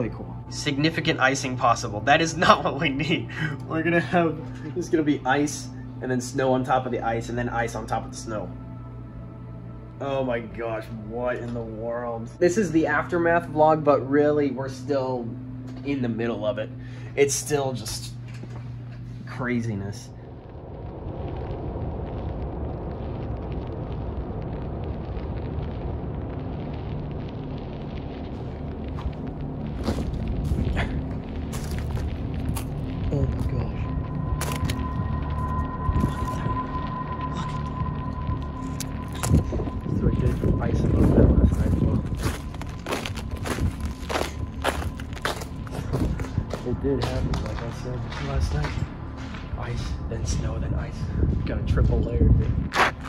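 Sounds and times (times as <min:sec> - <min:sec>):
low rumbling noise: 0:00.0 - 0:53.0
footsteps crunching on snow: 0:28.9 - 0:33.6, 0:38.8 - 0:50.0, 0:51.3 - 0:53.0.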